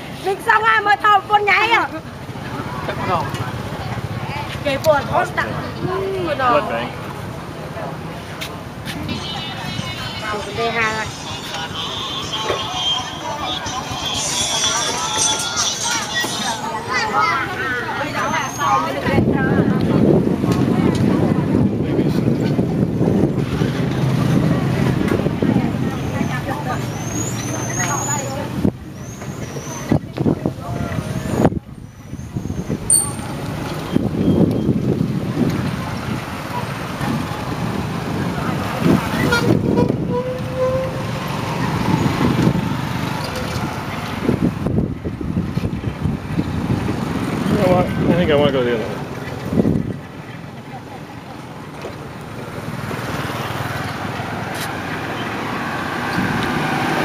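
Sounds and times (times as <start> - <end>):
low traffic rumble: 0.0 - 57.0
motorbike engines passing: 0.0 - 57.0.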